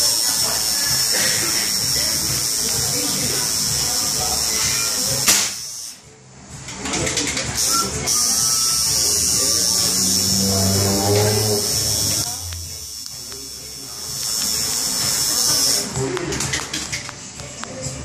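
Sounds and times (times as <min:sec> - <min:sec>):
tattoo machine buzzing: 0:00.0 - 0:06.0, 0:07.6 - 0:15.9.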